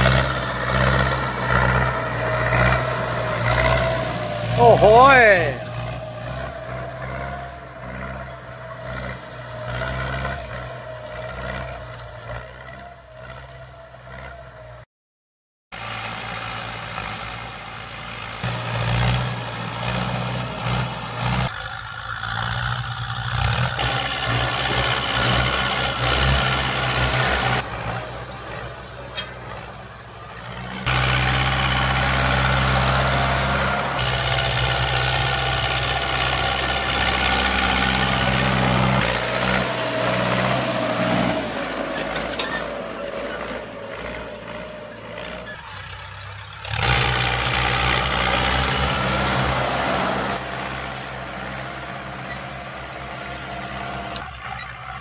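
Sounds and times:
disc tillers through dry soil: 0.0 - 14.8, 15.7 - 55.0
tractor diesel engines under load: 0.0 - 14.9, 15.7 - 55.0.

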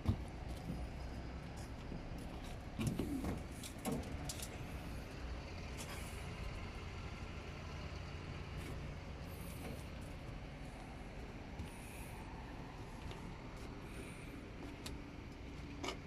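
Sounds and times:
diesel engine idling: 0.0 - 16.0.

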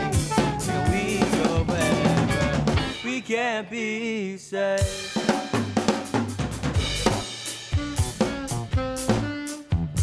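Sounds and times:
bass guitar: 0.0 - 3.1, 5.3 - 10.0
electric guitar: 0.0 - 3.1
drum kit groove: 0.0 - 3.4, 4.8 - 10.0.

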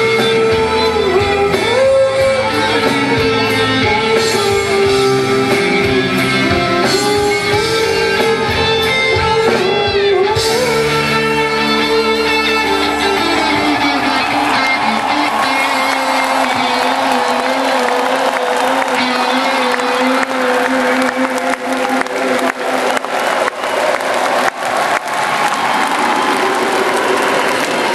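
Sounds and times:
crowd applauding and cheering: 0.0 - 27.9.

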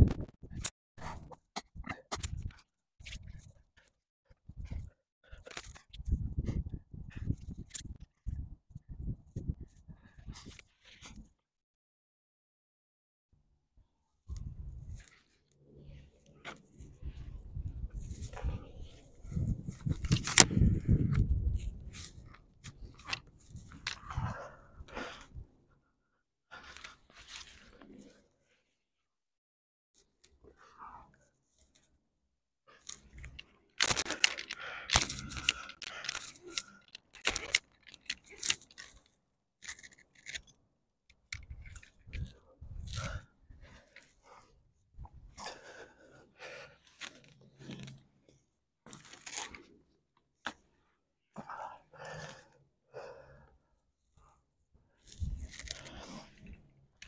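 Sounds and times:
gear scraping and clinking on rock: 16.2 - 24.3, 32.8 - 44.2, 46.9 - 48.1, 48.9 - 49.8, 55.0 - 57.0
sharp gasping breaths: 32.7 - 38.6, 42.1 - 47.2, 51.3 - 54.4.

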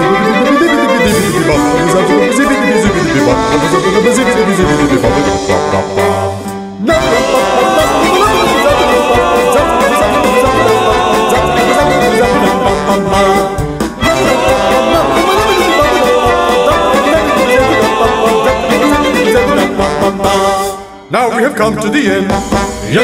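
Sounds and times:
violins: 0.0 - 21.0
brass: 0.0 - 23.0
steady drum beat: 1.0 - 6.2, 6.9 - 20.5, 22.3 - 23.0.

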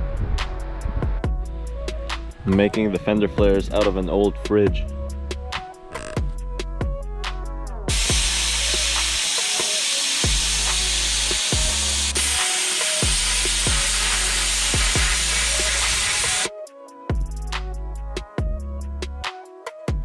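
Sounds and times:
background music with a beat: 0.0 - 20.0
plasma cutter hissing: 7.9 - 16.5.

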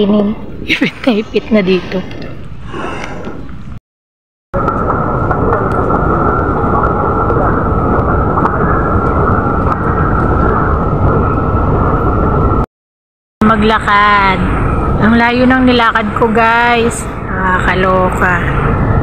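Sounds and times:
loud steady rumbling: 4.6 - 12.6, 13.4 - 19.0.

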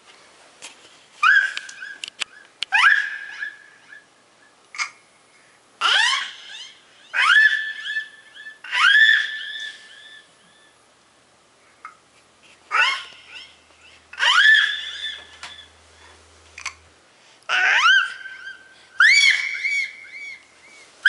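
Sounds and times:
baby squealing into microphone: 1.2 - 4.0, 5.8 - 10.7, 12.7 - 15.7, 17.5 - 20.8
echo repeats of squeals: 5.8 - 10.8, 12.7 - 15.8.

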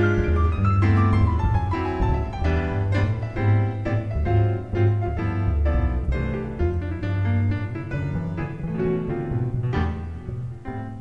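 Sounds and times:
low bass line: 0.0 - 11.0
piano playing chords: 0.0 - 11.0.

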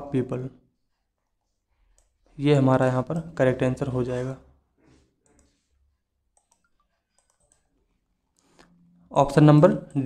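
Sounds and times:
computer mouse clicks: 5.2 - 5.7, 6.3 - 8.8.

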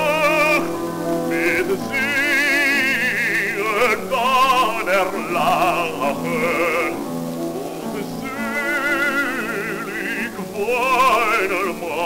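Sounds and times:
man singing with vibrato: 0.0 - 12.0
piano accompaniment: 0.0 - 12.0.

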